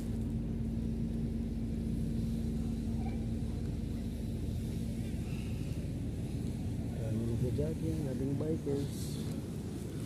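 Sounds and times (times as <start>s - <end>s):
low hum: 0.0s - 10.0s
low rumble: 0.0s - 10.0s.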